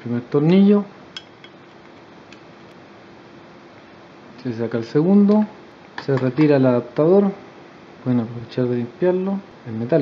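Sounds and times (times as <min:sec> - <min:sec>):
steady low hiss: 0:00.0 - 0:10.0.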